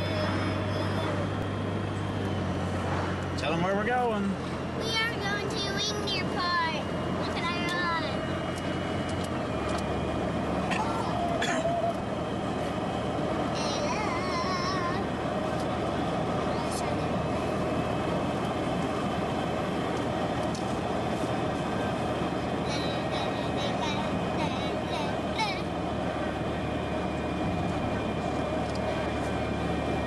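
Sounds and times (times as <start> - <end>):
child's voice: 0.0 - 1.4, 4.8 - 8.2, 13.5 - 15.1, 16.4 - 17.2, 22.6 - 25.7
road and engine noise in car: 0.0 - 30.0.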